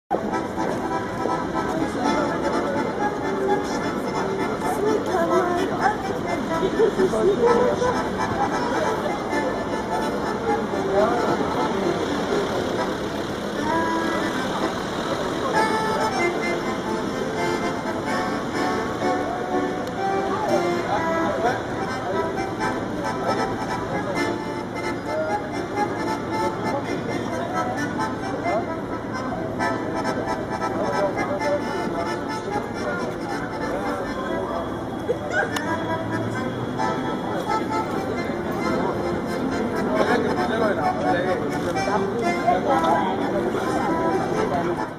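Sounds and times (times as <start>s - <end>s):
piano accordion playing: 0.1s - 44.9s.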